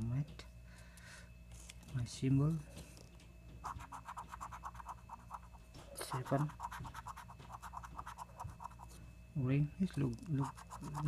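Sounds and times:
coin scratching lottery ticket: 3.6 - 9.0, 10.4 - 11.0.

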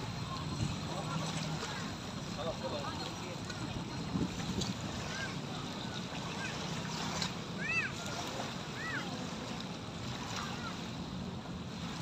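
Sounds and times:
distant voices: 0.0 - 12.0
small waves washing on shore: 0.0 - 12.0.

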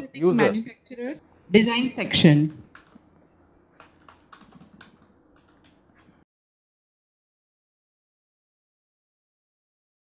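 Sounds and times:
faint keyboard typing: 2.4 - 6.2.

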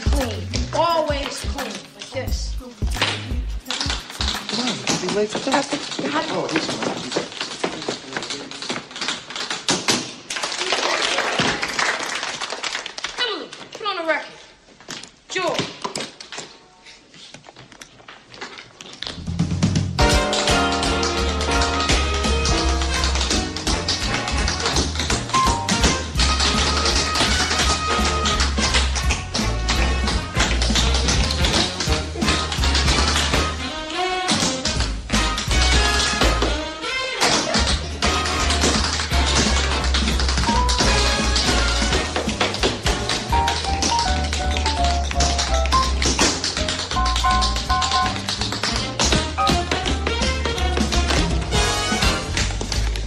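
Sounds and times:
recorded music: 0.0 - 6.9, 19.0 - 53.0
tap-dance taps: 2.8 - 10.2, 19.6 - 33.6, 37.2 - 53.0.

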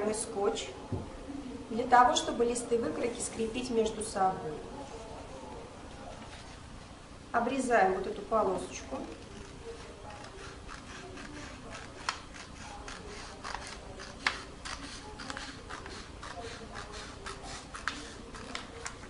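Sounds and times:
scissors snipping paper: 8.9 - 19.0.

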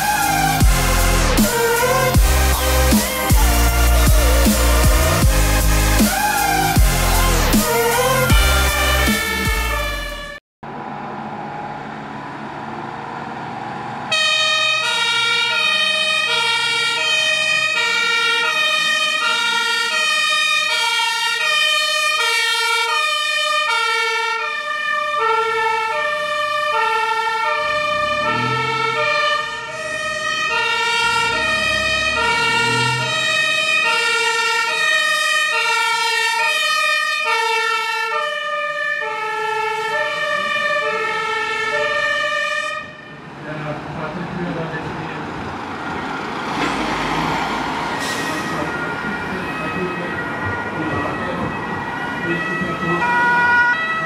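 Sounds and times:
two-tone emergency siren: 0.0 - 10.4, 13.5 - 43.3, 45.9 - 54.0
truck engine rumble: 0.0 - 38.4, 39.1 - 54.0.

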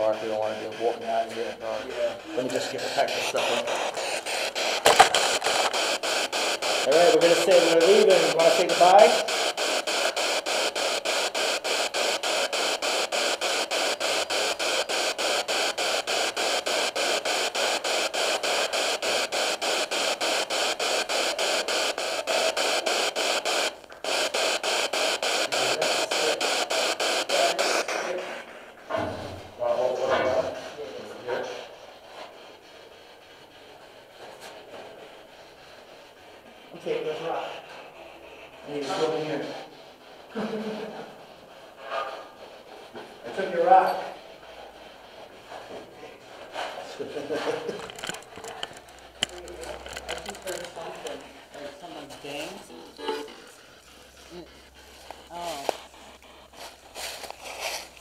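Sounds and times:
radio sound fragments: 0.0 - 31.9, 46.3 - 52.6
chopped radio static: 0.0 - 32.6, 33.6 - 53.4.

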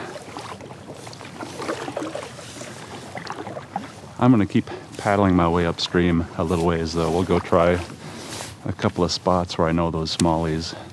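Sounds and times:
paddle splashing water: 0.0 - 10.9.

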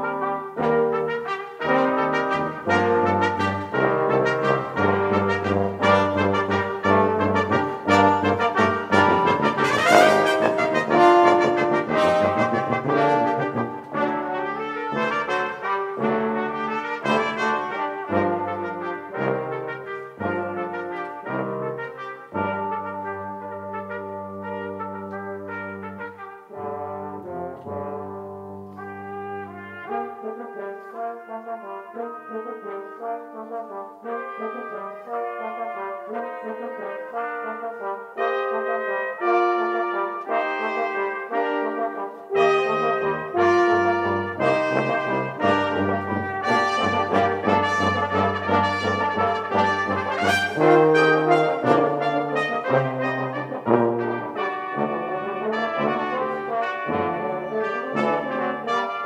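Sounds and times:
brass quintet playing: 0.0 - 59.0
tuba: 0.0 - 59.0.

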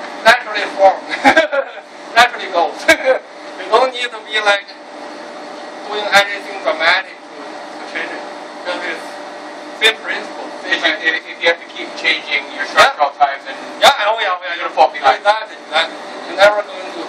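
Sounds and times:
steady background hum: 0.0 - 17.0
men laughing: 1.1 - 1.9, 2.8 - 3.3.

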